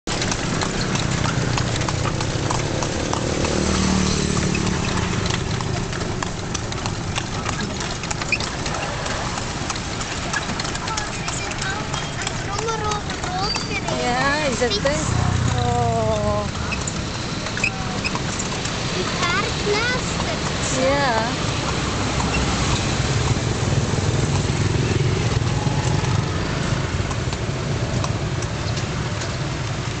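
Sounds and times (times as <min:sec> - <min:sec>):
street traffic rumble: 0:00.0 - 0:30.0
hooves clip-clopping on asphalt: 0:00.1 - 0:30.0
low engine hum: 0:00.1 - 0:30.0.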